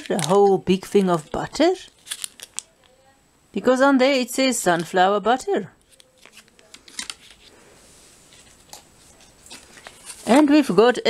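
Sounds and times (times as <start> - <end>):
foil pouches crinkling: 0.0 - 2.7, 5.8 - 7.5.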